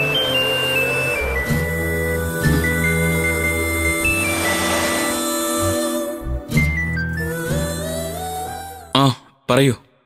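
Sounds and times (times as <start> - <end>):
synthesizer film score: 0.0 - 9.0.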